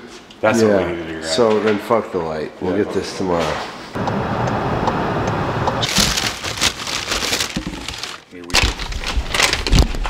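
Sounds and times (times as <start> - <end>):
road and wind noise in car: 4.0 - 5.8.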